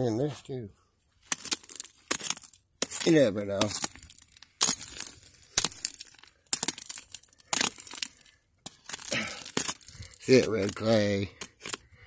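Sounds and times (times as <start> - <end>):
small stones clinking: 1.2 - 11.9
rock hammer striking clay and gravel: 1.3 - 11.9.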